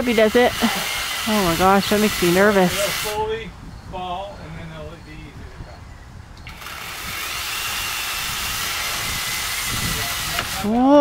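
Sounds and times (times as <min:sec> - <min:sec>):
power saw cutting branches: 0:00.0 - 0:03.3, 0:06.4 - 0:11.0.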